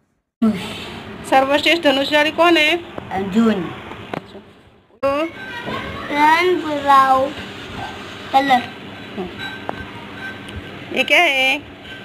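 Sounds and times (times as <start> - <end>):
young child speaking: 5.3 - 7.4, 8.3 - 8.8.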